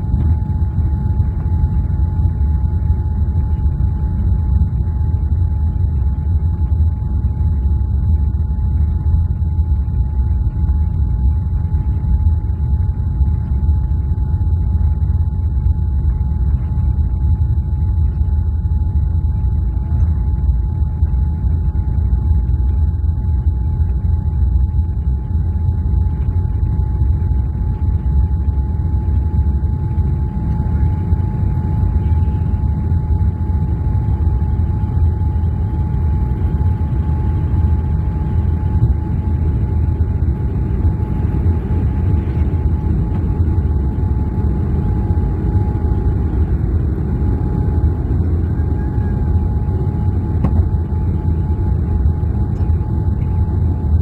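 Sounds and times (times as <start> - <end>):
jet engine cabin rumble: 0.0 - 54.0
thin steady tone: 0.0 - 54.0.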